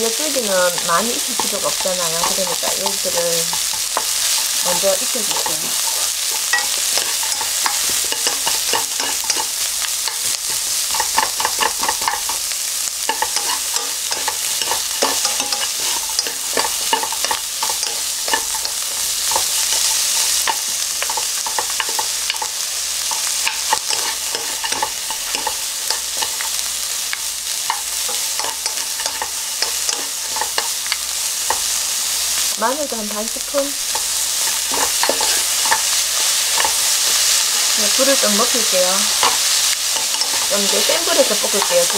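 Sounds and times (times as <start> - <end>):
vegetables sizzling in oil: 0.0 - 41.9
wooden spatulas scraping a pan: 0.7 - 12.4, 13.0 - 22.5, 23.1 - 26.9, 33.9 - 41.9.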